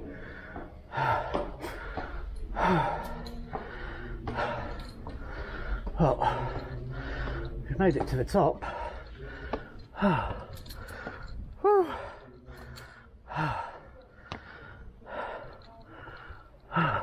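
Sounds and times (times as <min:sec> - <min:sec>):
man breathing hard: 0:00.0 - 0:07.7, 0:08.6 - 0:17.0
man sighing and gasping: 0:08.6 - 0:17.0.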